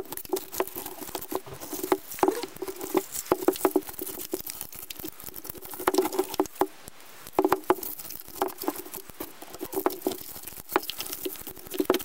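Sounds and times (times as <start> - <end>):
broom bristles rustling and scratching: 0.0 - 12.0.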